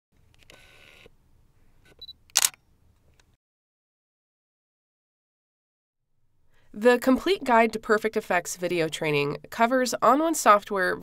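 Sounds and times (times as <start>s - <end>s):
camera mechanical whirr: 0.3s - 1.1s, 1.9s - 2.6s
camera beep: 2.0s - 2.6s
camera shutter click: 2.0s - 2.6s.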